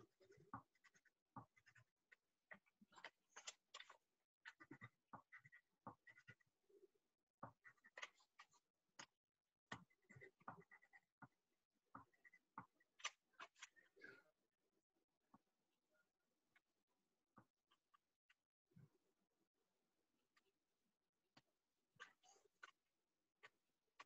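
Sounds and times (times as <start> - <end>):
paintbrush scratching on paper: 0.1 - 6.5, 9.8 - 11.2.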